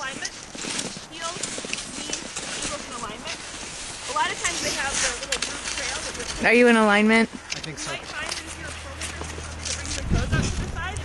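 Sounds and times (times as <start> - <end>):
skis and poles crunching on snow: 0.0 - 11.0
steady low rumble: 7.6 - 11.0.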